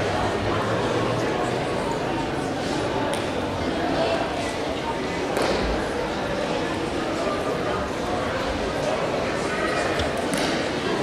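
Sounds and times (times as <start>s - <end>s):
murmur of many people talking: 0.0s - 11.0s.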